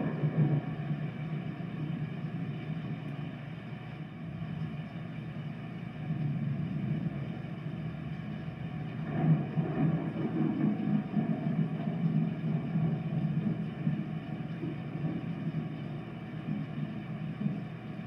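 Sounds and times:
low rumble of thunder: 0.0 - 2.2, 8.9 - 17.7.

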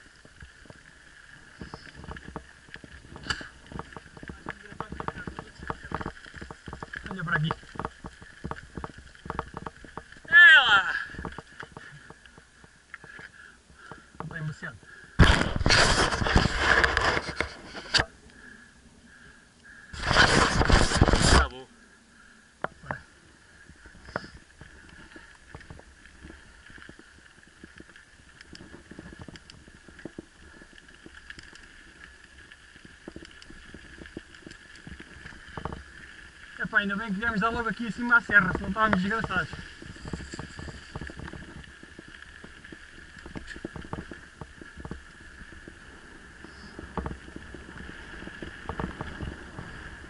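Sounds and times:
bike riding over gravel track: 0.0 - 18.1, 23.8 - 50.0
bike rattles and knocks: 1.5 - 14.5, 32.8 - 36.2, 37.2 - 45.8, 46.4 - 50.0
wind noise on microphone: 15.2 - 18.0, 19.9 - 21.5, 38.3 - 42.6, 43.2 - 50.0.

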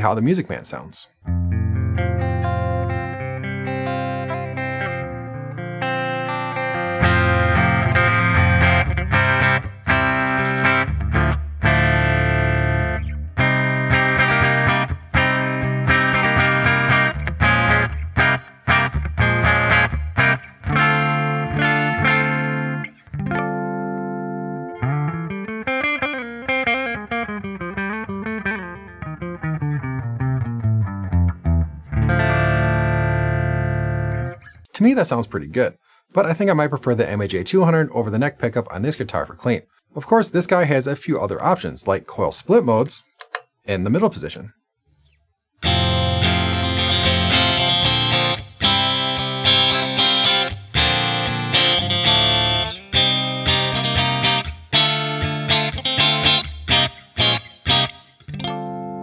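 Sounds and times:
clean electric guitar: 1.1 - 34.8, 45.0 - 59.0.

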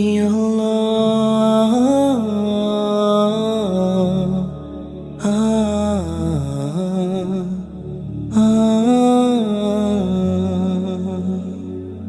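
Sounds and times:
soft sustained accompaniment: 0.0 - 12.0.

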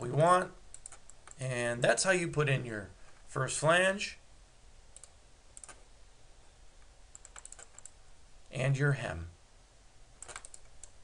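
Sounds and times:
computer mouse and key clicks: 0.1 - 1.4, 5.0 - 5.8, 7.1 - 8.0, 10.2 - 11.0.

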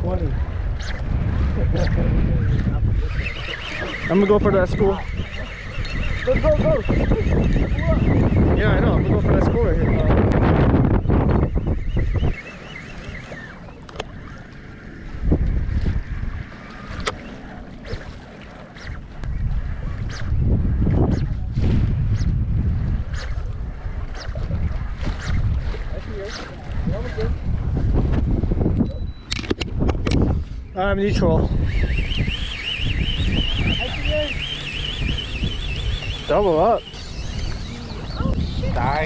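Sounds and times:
wind buffeting microphone: 0.0 - 39.0
fishing reels clicking: 0.7 - 1.1, 1.7 - 15.9, 16.6 - 19.3, 19.9 - 21.4, 23.0 - 27.4, 31.5 - 38.0.

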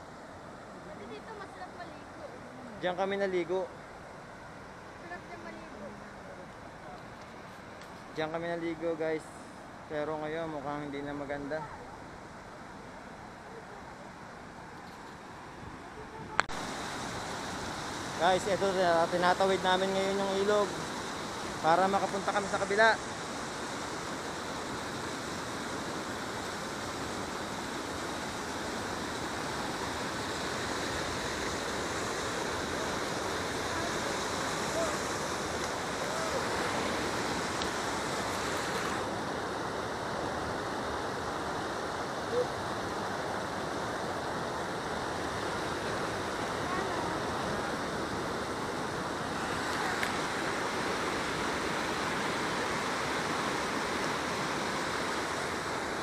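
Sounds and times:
water rushing over weir: 15.6 - 56.0.

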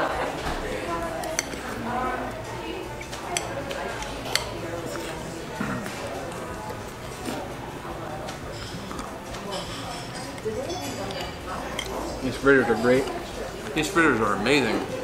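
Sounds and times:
low background chatter: 0.0 - 15.0
spoons clinking on glass bowls: 3.0 - 5.1, 9.5 - 12.1.

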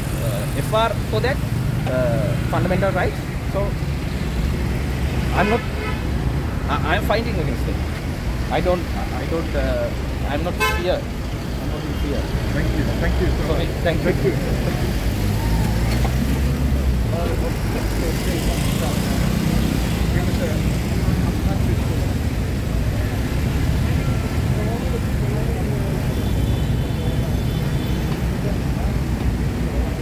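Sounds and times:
people talking indistinctly: 0.0 - 30.0
road traffic rumble: 0.0 - 30.0.

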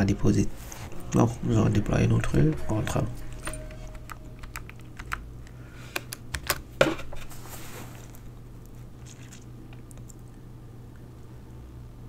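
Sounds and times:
computer keyboard typing: 3.3 - 6.6.

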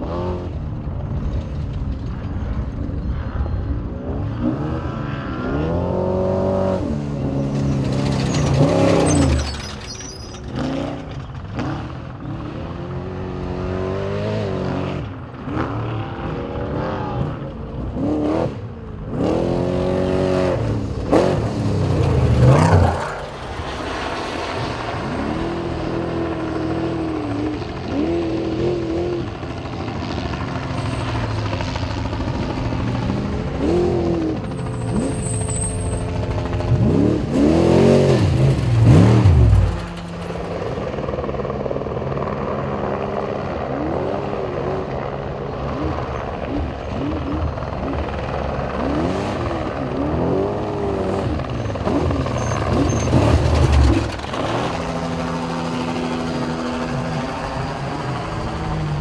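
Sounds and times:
truck engines revving hard: 0.0 - 2.4, 3.6 - 41.4, 42.0 - 59.0.

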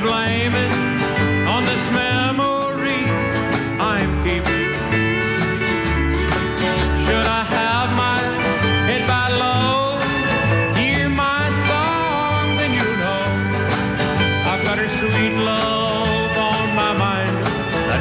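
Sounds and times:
bass line: 0.0 - 18.0
guitars playing: 0.0 - 18.0
man singing country song: 0.0 - 18.0.

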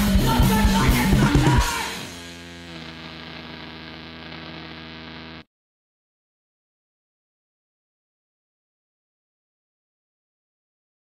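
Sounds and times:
electrical hum with buzzing overtones: 0.0 - 5.5.

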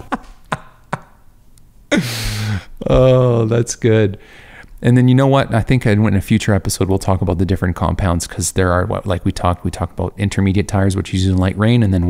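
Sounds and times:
man laughing breathily: 0.0 - 1.2, 1.9 - 2.8.

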